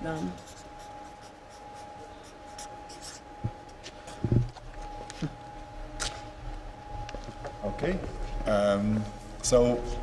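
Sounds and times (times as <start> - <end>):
marker writing on paper: 0.4 - 3.3.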